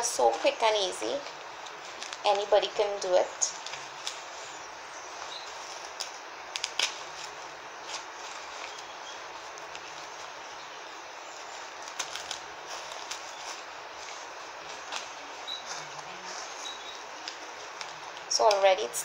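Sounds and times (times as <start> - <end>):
flower stems clicking and rustling: 0.0 - 19.0
steady background hiss: 0.0 - 19.0.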